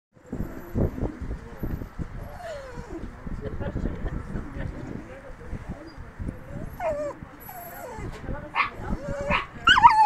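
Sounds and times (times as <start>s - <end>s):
dog whining: 2.3s - 3.0s, 6.5s - 10.0s.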